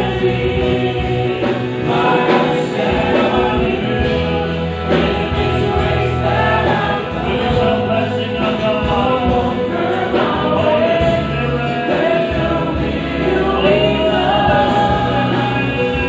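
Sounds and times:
congregation singing: 0.0s - 16.0s
worship band playing: 0.0s - 16.0s.

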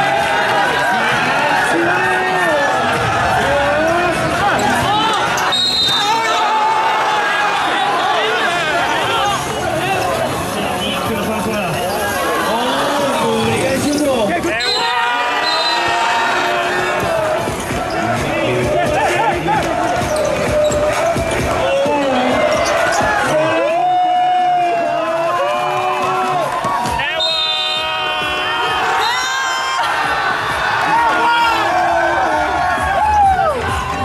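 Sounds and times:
music: 0.0s - 7.7s, 12.9s - 34.0s.

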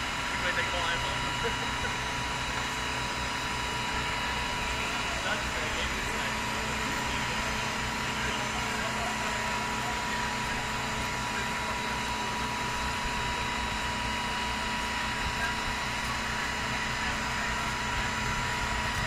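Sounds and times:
fire truck engines running: 0.0s - 19.0s
thin steady whine: 0.0s - 19.0s.

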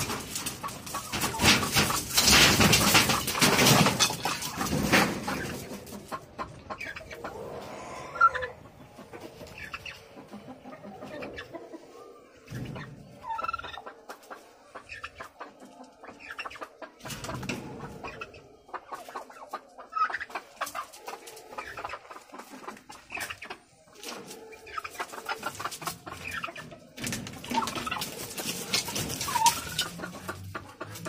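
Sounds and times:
poultry clucking and calling: 0.0s - 31.0s.

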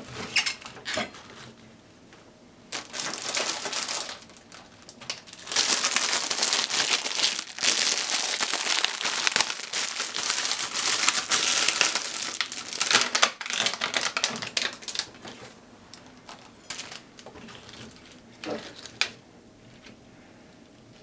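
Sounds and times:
plastic packaging crinkling: 2.7s - 19.2s.

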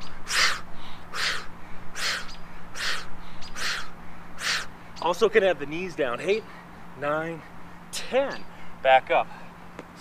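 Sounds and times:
man exhaling hard: 0.3s - 4.7s.

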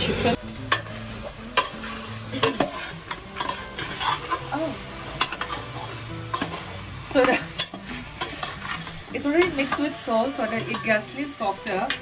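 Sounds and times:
metal ladle stirring in a pot: 0.6s - 12.0s.

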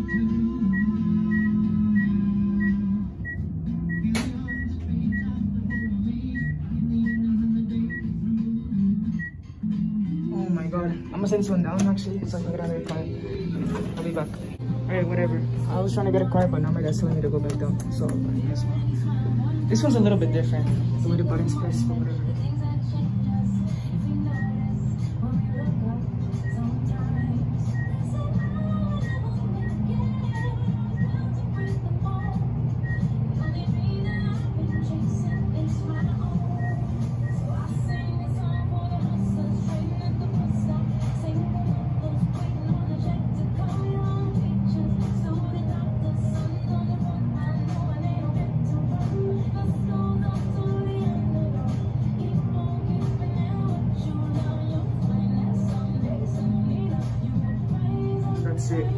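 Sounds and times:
elevator low hum: 0.0s - 58.9s
music playing: 0.0s - 58.9s.

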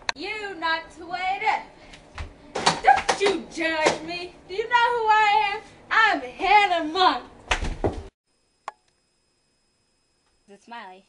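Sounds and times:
girl singing: 0.2s - 1.7s, 2.8s - 7.3s.

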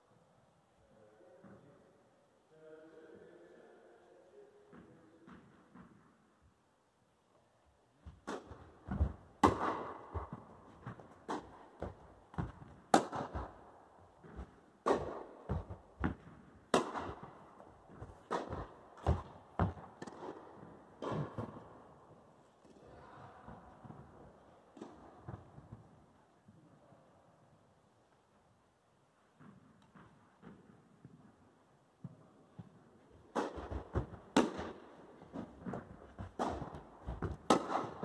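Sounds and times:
tennis ball bouncing on court: 8.1s - 21.8s, 32.0s - 38.0s
tennis ball struck by rackets: 8.1s - 21.8s, 33.3s - 38.0s.

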